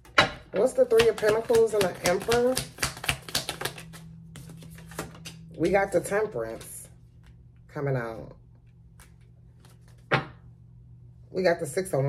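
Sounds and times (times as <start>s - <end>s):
cards being shuffled by hand: 0.8s - 5.4s, 8.9s - 10.1s.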